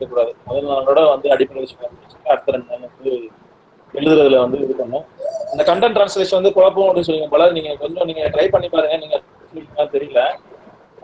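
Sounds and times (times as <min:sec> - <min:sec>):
man's voice over video call: 0:00.0 - 0:03.3, 0:03.9 - 0:10.5.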